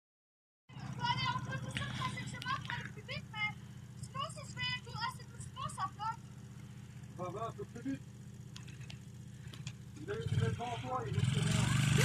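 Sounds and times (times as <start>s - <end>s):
steady low hum: 0.7s - 12.0s.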